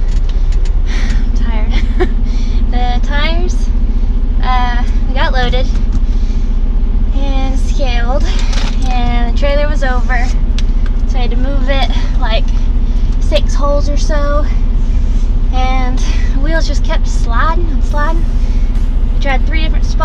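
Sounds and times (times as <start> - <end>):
diesel engine idling: 0.0 - 20.0
steady hum: 0.0 - 20.0
person talking and laughing: 1.0 - 2.8.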